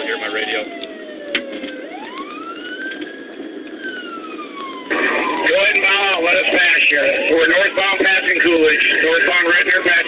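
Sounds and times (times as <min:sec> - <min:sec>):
police siren wailing: 0:00.0 - 0:10.0.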